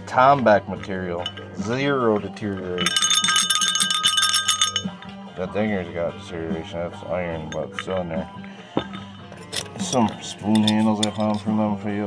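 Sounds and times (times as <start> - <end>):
sleigh bell jingling: 2.6 - 5.2.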